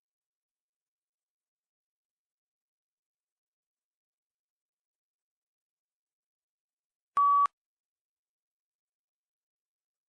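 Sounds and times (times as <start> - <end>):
short electronic beep: 7.2 - 7.5.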